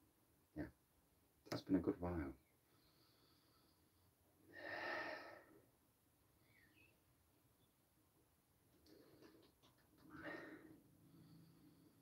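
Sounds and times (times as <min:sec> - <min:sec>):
breathy sound: 0:02.7 - 0:05.7, 0:10.1 - 0:12.0.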